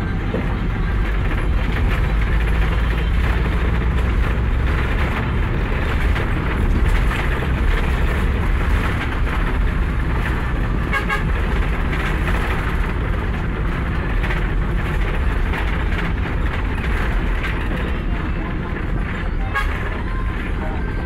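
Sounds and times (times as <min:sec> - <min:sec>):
vehicle engine and road rumble: 0:00.0 - 0:21.0.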